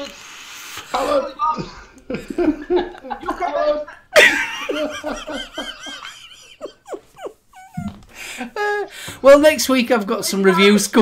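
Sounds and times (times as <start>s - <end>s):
men laughing: 1.0s - 8.9s.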